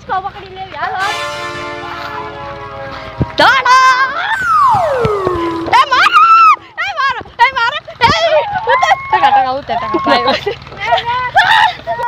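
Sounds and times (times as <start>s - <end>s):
high-pitched wailing cries: 3.8s - 7.1s, 8.1s - 10.4s.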